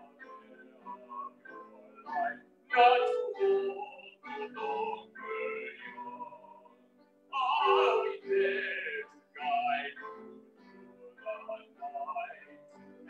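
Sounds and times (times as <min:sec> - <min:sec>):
man singing: 0:00.0 - 0:06.7, 0:07.4 - 0:10.3, 0:11.1 - 0:12.6
musical accompaniment: 0:00.0 - 0:13.0.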